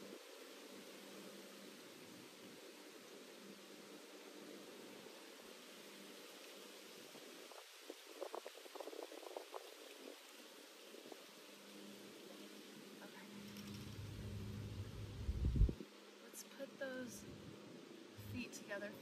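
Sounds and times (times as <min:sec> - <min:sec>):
background hiss: 0:00.0 - 0:19.0
light rustles and clicks: 0:13.3 - 0:14.8
low rumble: 0:13.6 - 0:15.8.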